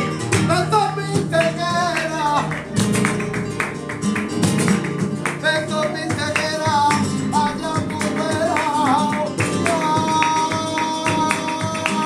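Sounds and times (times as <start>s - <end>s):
flamenco guitar: 0.0s - 12.0s
sharp hand claps: 0.0s - 12.0s.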